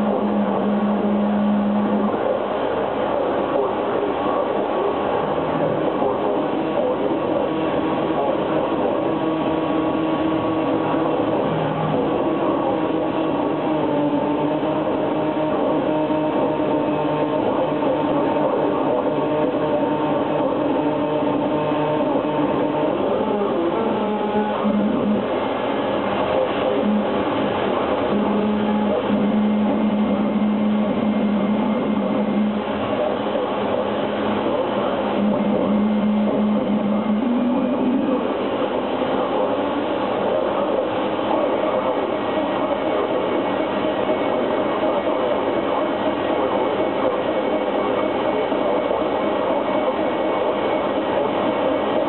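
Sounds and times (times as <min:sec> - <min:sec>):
distorted electronic noise: 0:00.0 - 0:52.0
steady droning tones: 0:00.0 - 0:52.0.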